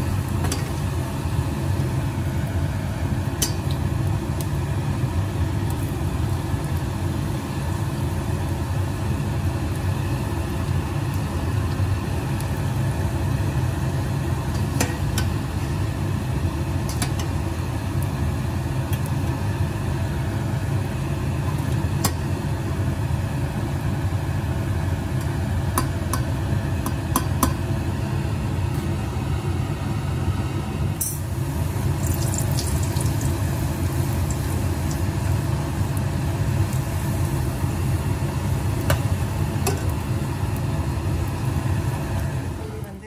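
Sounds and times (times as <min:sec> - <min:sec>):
dough deep-frying in oil: 0:00.0 - 0:43.0.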